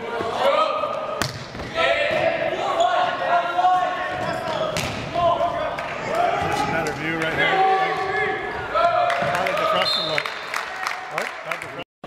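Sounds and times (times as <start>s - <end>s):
volleyball smacks: 1.2s - 1.7s.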